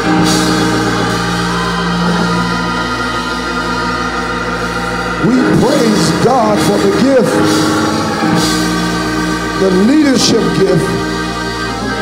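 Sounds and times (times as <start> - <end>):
sustained church instrumental chord: 0.0 - 12.0.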